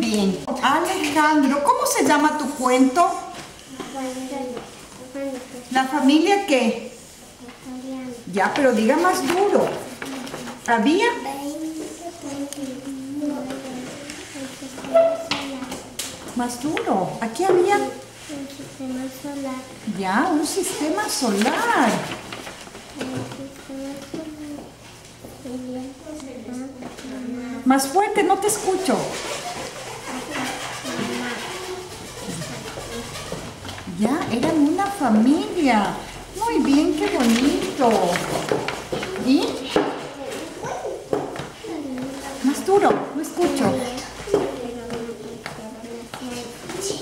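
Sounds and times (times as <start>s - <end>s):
child speaking softly: 11.2s - 15.8s, 43.7s - 47.0s.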